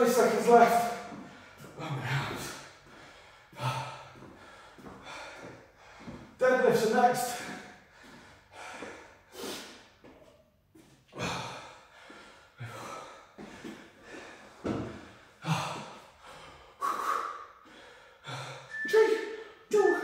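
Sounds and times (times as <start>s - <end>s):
man gasping for breath: 1.1s - 6.4s, 7.4s - 10.0s, 11.1s - 18.7s.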